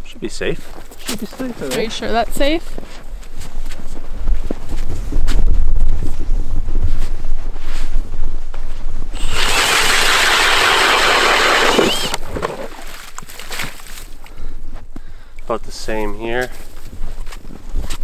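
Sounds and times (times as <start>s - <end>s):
wind rumbling on microphone: 3.6s - 10.6s
cordless drill boring through ice: 9.2s - 12.9s.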